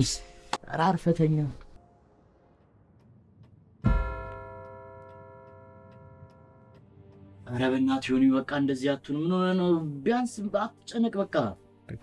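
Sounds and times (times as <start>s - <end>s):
clock-like ticking: 3.0s - 8.0s
deep hit with ringing chord: 3.9s - 6.8s.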